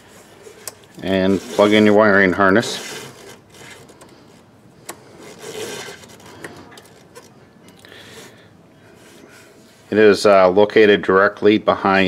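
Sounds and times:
hands rubbing and rustling parts: 0:00.0 - 0:10.3.

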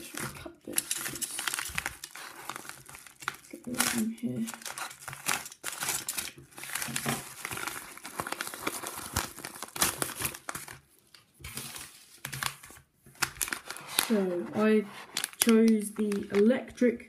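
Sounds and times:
paper mailer crinkling and tearing: 0:00.0 - 0:10.8, 0:11.4 - 0:16.5.

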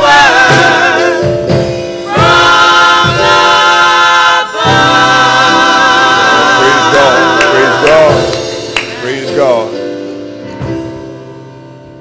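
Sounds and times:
gospel choir singing: 0:00.0 - 0:09.8.

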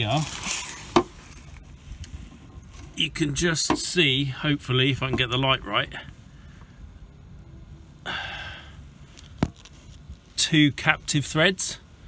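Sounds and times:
handling ticks and rustles: 0:00.0 - 0:03.9, 0:09.0 - 0:11.2
low background hiss: 0:00.0 - 0:12.0.

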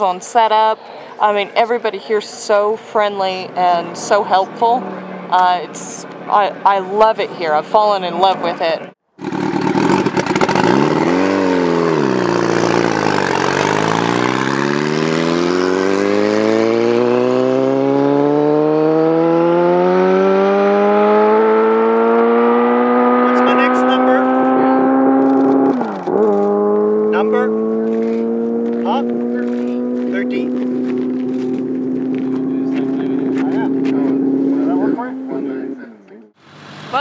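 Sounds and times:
motorcycle engine accelerating: 0:09.2 - 0:37.0.

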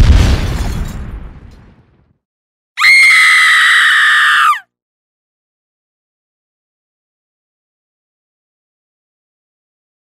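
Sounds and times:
high-pitched scream: 0:02.8 - 0:04.6.

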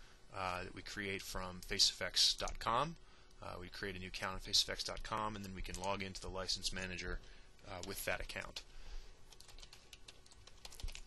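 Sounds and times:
keystrokes on computer keyboard: 0:09.3 - 0:11.0.

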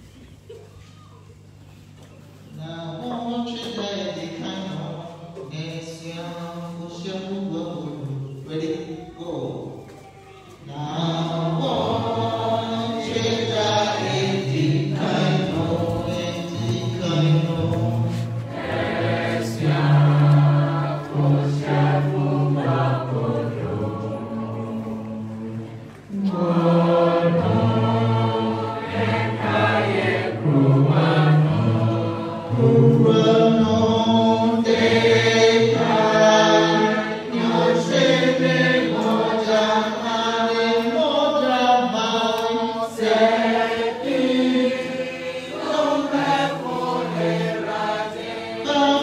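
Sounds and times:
congregation singing a hymn: 0:10.6 - 0:49.0.

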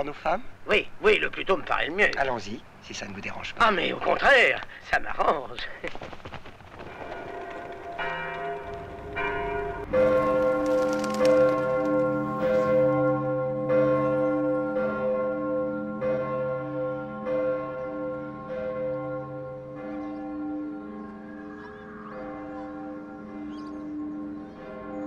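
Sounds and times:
church bells ringing: 0:06.7 - 0:25.0.

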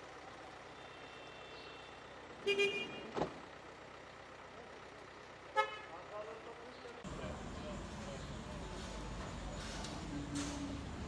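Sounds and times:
street traffic: 0:00.0 - 0:11.0
car horn toot: 0:00.8 - 0:03.2, 0:05.5 - 0:06.0.

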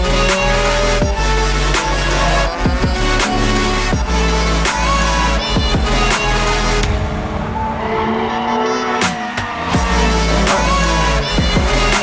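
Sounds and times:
car engine at high revs: 0:00.0 - 0:06.9, 0:08.7 - 0:12.0.

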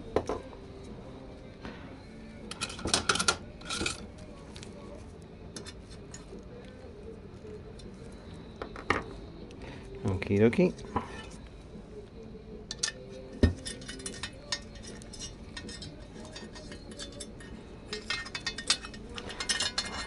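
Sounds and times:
metal tools clinking on workbench: 0:12.7 - 0:20.0.

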